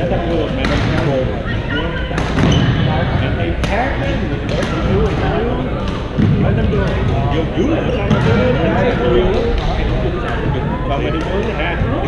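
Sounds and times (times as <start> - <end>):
racket hitting shuttlecock: 2.1 - 2.6.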